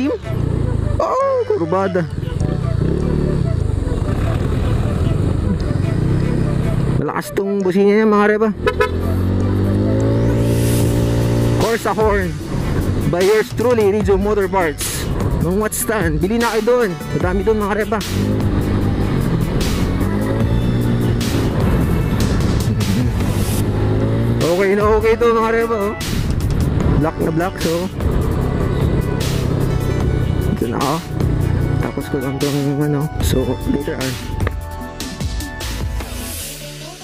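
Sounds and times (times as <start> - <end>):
scooter engine running: 0.0 - 7.1, 8.5 - 14.3, 17.2 - 25.1, 26.2 - 32.3
background music: 0.0 - 37.0.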